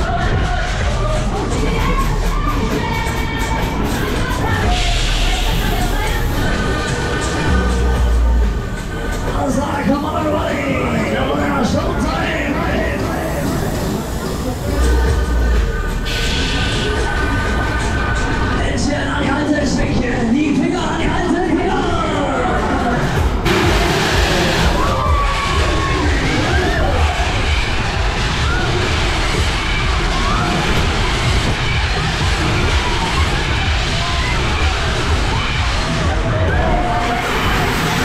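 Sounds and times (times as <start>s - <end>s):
fairground music: 0.0s - 38.0s
ride mechanical rumble: 0.0s - 38.0s
burst of hiss: 23.4s - 25.2s.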